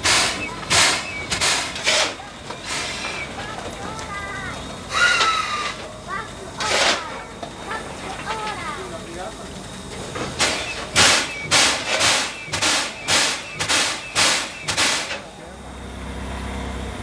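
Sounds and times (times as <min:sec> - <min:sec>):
steam locomotive exhaust beats: 0:00.0 - 0:17.0.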